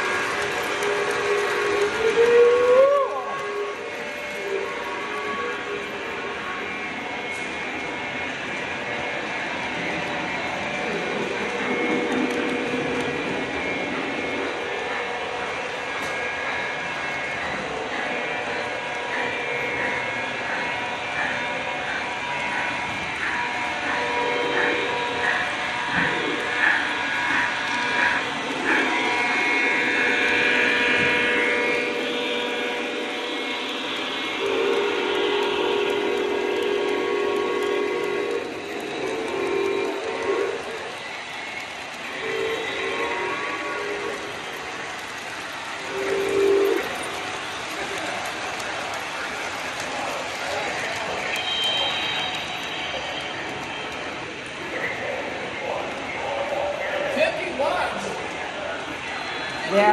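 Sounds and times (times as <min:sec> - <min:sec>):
high train whistle: 0:00.0 - 0:55.6
model trains running: 0:00.0 - 0:59.9
deep train horn blasts: 0:28.8 - 0:40.6
model train bell ringing: 0:44.0 - 0:54.0.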